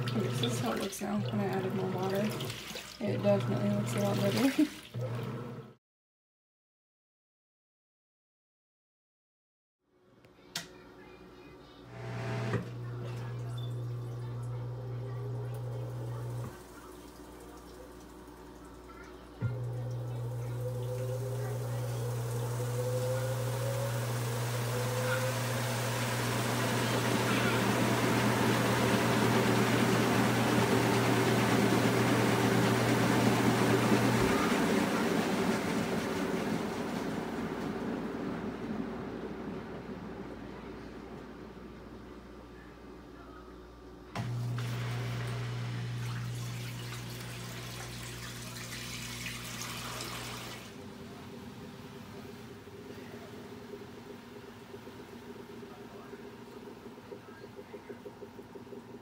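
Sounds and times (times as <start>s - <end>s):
water running into tub: 0.0s - 5.6s, 12.6s - 40.2s, 44.2s - 59.0s
washing machine low hum: 0.0s - 5.8s, 11.0s - 59.0s.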